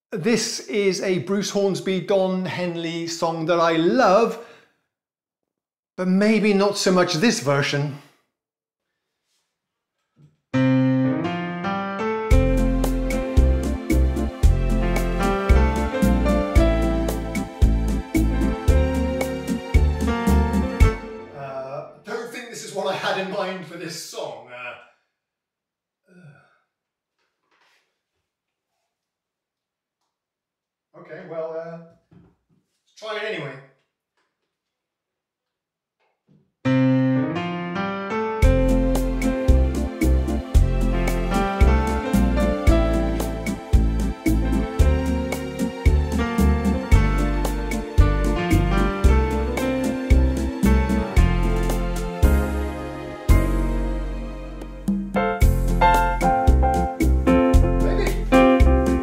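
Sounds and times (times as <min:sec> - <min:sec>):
digital piano chords: 0:10.6 - 0:21.4, 0:36.7 - 0:59.0.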